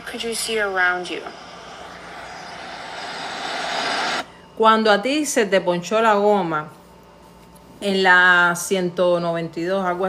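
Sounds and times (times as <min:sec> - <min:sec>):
steady rushing noise: 0:00.0 - 0:04.3.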